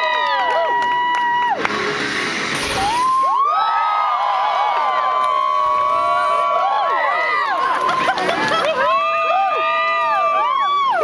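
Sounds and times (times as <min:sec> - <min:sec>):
audience cheering and whooping: 0:00.0 - 0:11.0
music: 0:00.1 - 0:03.5, 0:07.5 - 0:11.0
burst of rushing noise: 0:01.7 - 0:03.6.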